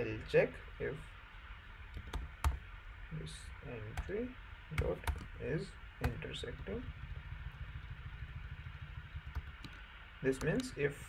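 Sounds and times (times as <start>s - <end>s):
low rumble: 5.3s - 10.2s.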